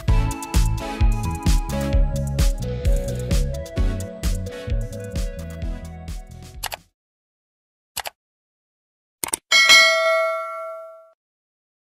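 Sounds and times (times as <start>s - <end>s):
notification bell ding: 9.5s - 11.2s.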